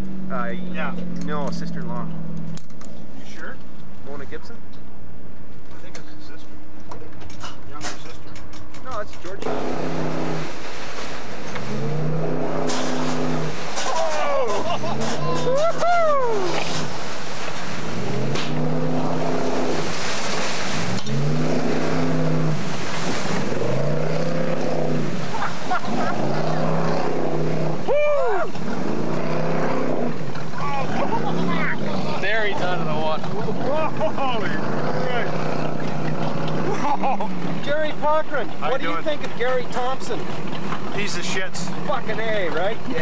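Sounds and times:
speedboat engine revving: 0.0s - 2.8s, 9.3s - 43.0s.

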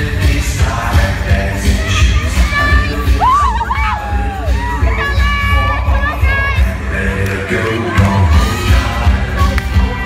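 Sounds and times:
jive dance music: 0.0s - 10.0s.

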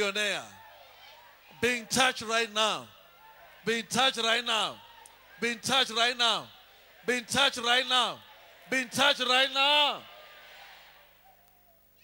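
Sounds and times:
man shouting with hall echo: 3.6s - 10.1s.

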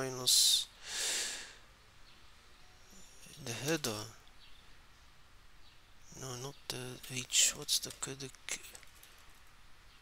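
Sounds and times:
man exhaling: 0.8s - 1.6s.

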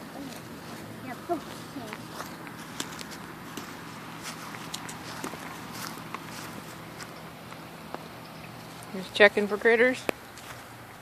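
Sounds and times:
footsteps on dry grass: 0.0s - 10.9s.

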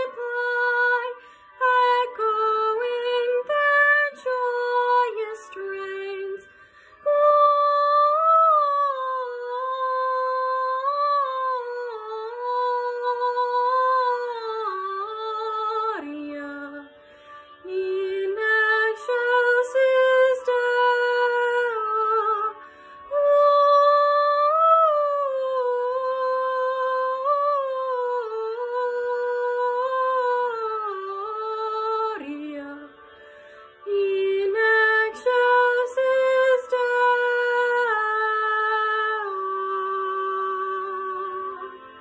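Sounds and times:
girl singing slow melody: 0.0s - 17.0s, 17.6s - 33.0s, 33.8s - 42.0s.

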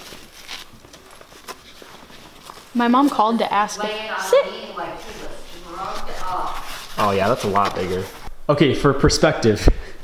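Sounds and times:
mesh pet carrier rustling: 0.0s - 8.3s.

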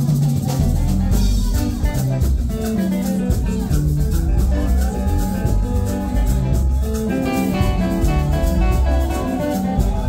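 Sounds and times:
live band music: 0.0s - 10.0s
shaker ticking: 0.0s - 10.0s.

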